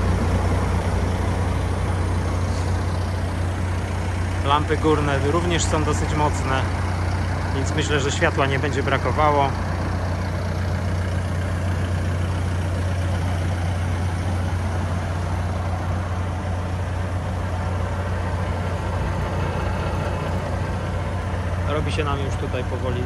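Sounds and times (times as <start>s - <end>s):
diesel engine idling: 0.0s - 23.0s.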